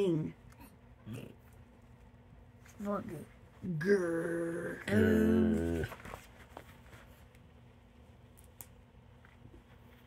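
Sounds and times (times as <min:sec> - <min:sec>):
faint low hum: 0:00.0 - 0:10.0
book page turning: 0:05.6 - 0:07.4.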